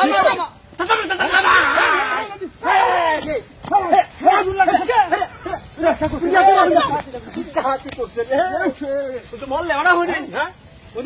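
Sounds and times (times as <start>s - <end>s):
dry grass burning hiss: 0.0s - 11.0s
voices calling out: 0.0s - 11.0s.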